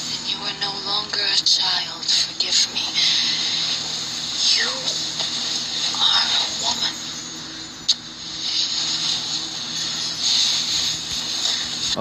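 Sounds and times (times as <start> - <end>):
faint low hum: 0.0 - 12.0
steady hiss: 0.3 - 12.0.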